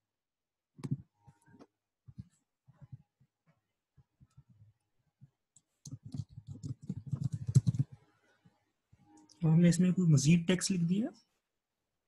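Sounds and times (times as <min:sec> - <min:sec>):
computer keyboard typing: 0:05.6 - 0:08.0.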